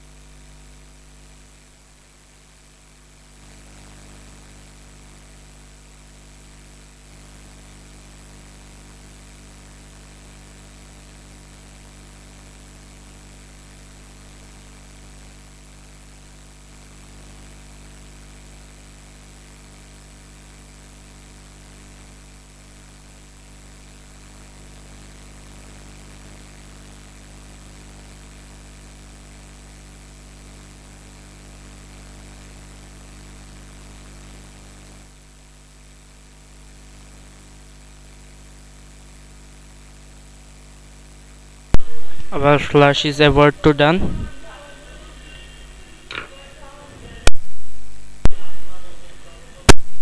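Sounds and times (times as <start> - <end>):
low electrical hum: 0.0 - 50.0
steady hiss: 40.2 - 50.0
faint steady tones: 41.8 - 49.7.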